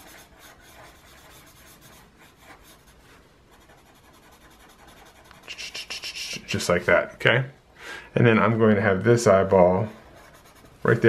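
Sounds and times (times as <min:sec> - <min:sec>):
marker scribbling on paper: 0:00.0 - 0:06.7, 0:10.1 - 0:11.0.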